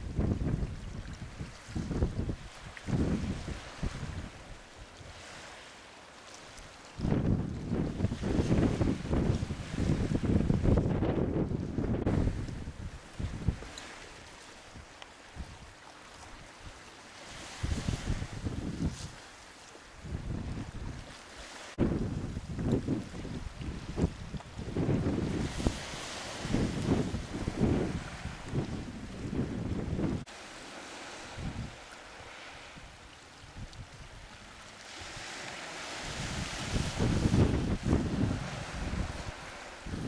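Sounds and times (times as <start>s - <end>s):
wind buffeting microphone: 0.0s - 5.3s, 7.0s - 14.1s, 16.4s - 19.2s, 20.0s - 21.2s, 21.8s - 30.3s, 30.9s - 34.4s, 35.0s - 40.0s
choppy sea hiss: 0.0s - 40.0s.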